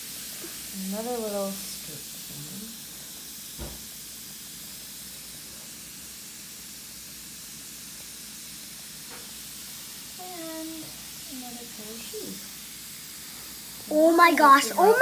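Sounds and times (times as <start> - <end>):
fizzing ball dissolving in water: 0.0 - 15.0
knock: 3.6 - 3.9.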